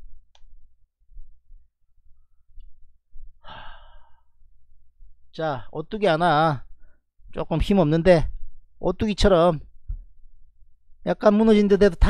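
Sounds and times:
man sighing: 0:03.4 - 0:04.3.

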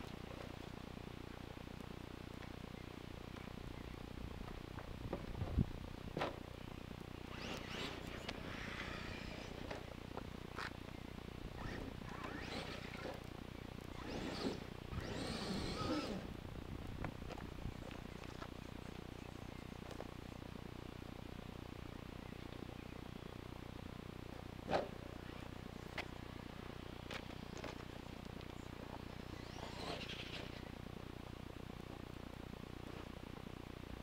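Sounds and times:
electric toy truck motor: 0:07.3 - 0:09.9, 0:11.6 - 0:13.3, 0:13.9 - 0:16.4, 0:29.1 - 0:30.6.

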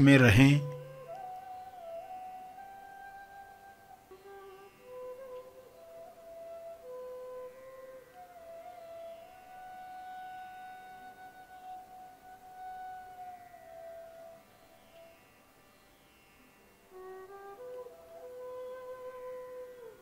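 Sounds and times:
soft instrumental music: 0:00.0 - 0:15.2, 0:16.3 - 0:20.0.

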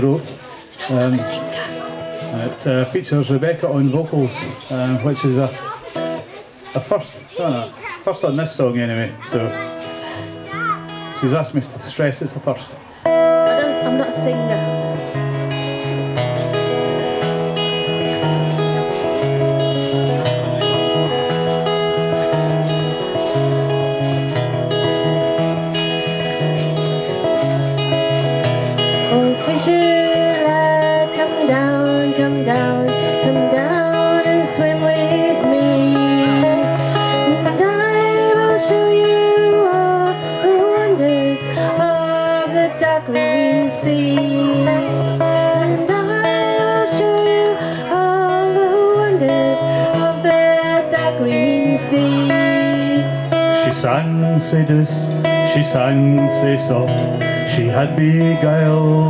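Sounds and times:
acoustic guitar strumming: 0:00.0 - 0:59.0
woman singing: 0:29.0 - 0:53.4.

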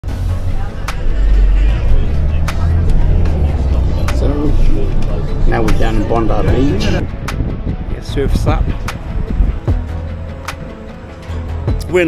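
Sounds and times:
bus engine and road rumble: 0:00.0 - 0:11.6
faint passenger voices: 0:00.2 - 0:07.0.

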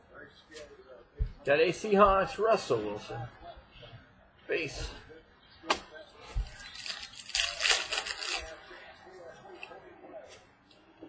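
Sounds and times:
foil wrapper crinkling: 0:06.6 - 0:08.6.

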